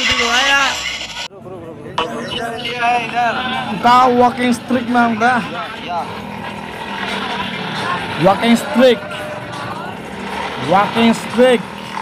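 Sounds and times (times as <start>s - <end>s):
people's voices: 0.0s - 12.0s
traffic noise: 0.0s - 12.0s.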